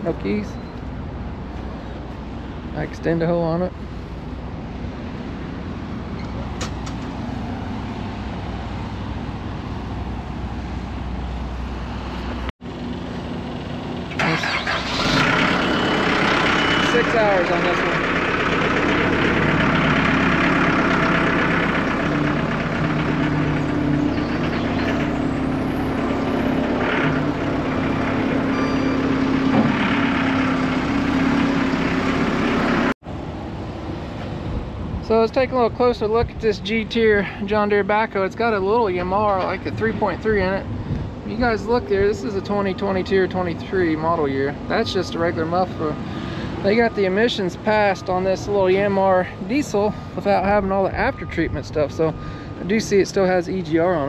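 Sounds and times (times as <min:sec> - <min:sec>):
diesel engine running: 0:00.0 - 0:33.5, 0:35.1 - 0:54.0.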